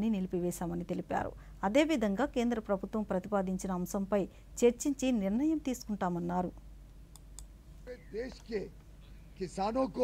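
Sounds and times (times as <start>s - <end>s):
man speaking into microphones: 7.9s - 10.0s.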